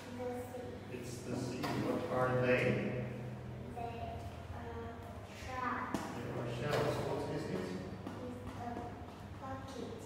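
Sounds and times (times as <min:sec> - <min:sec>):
sharp tap: 0:05.9 - 0:06.9.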